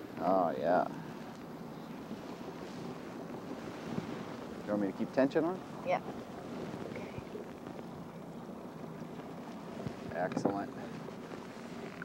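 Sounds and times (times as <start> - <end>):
sea water: 0.0 - 12.0
wind: 0.0 - 12.0
faint knocks: 9.8 - 10.8.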